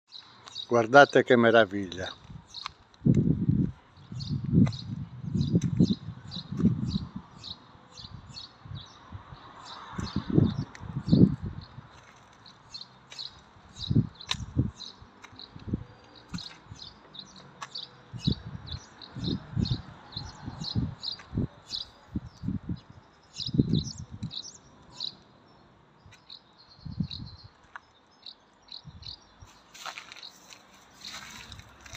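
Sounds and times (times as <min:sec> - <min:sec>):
small bird chirping: 0:12.4 - 0:31.9.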